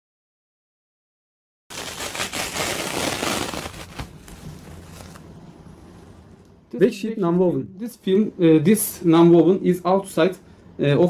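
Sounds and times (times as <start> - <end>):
diaper cover peeling with crackling: 1.7 - 5.2.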